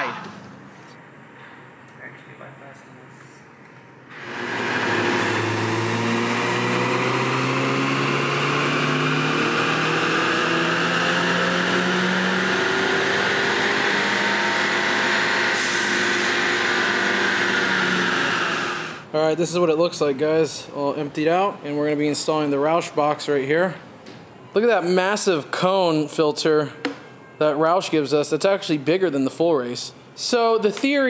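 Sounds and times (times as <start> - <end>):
car engine revving on dyno: 4.1 - 19.1.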